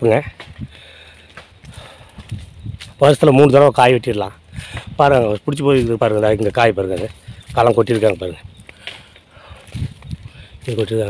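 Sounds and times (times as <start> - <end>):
footsteps on sandy ground: 0.0 - 11.0.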